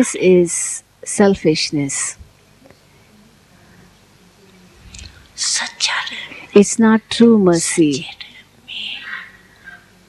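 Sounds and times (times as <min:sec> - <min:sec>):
woman speaking: 0:00.0 - 0:02.2, 0:05.4 - 0:09.4.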